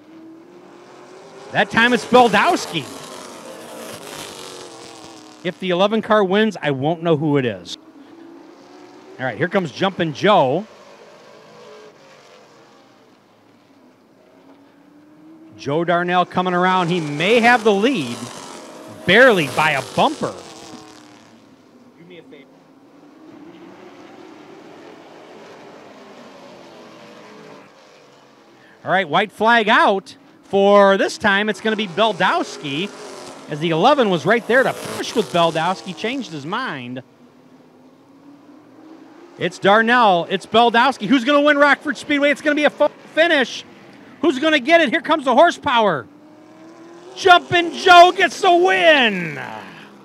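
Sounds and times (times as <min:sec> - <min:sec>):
race car engines droning: 0:00.0 - 0:50.0.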